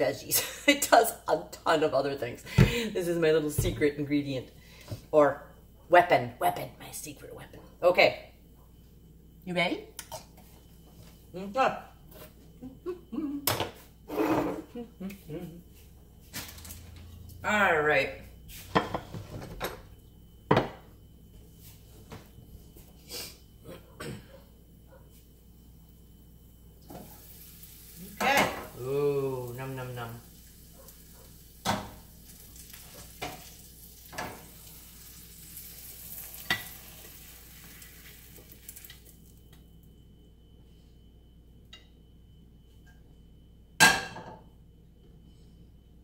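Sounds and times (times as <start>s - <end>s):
food sizzling in a skillet: 26.8s - 39.2s.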